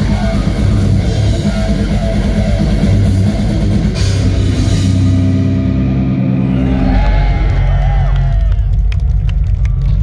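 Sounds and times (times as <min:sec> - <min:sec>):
crowd shouting and cheering: 0:05.1 - 0:10.0.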